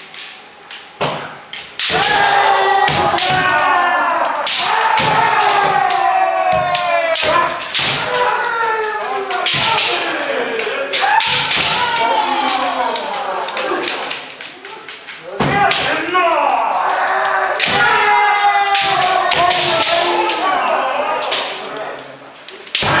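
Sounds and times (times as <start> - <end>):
bamboo swords clacking: 0.0 - 23.0
people shouting: 1.1 - 23.0.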